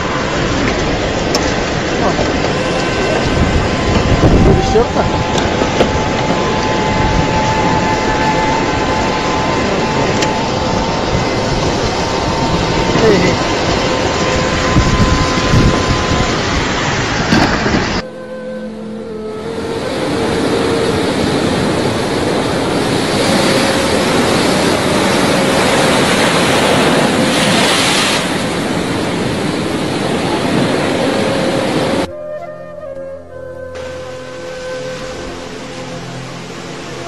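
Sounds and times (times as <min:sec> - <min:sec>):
floodwater rushing: 0:00.0 - 0:32.1, 0:33.7 - 0:37.0
wind buffeting microphone: 0:00.0 - 0:33.0.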